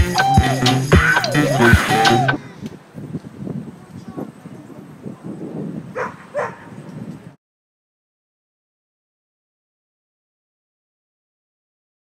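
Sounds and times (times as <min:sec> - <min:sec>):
dog barking: 0:05.9 - 0:06.8.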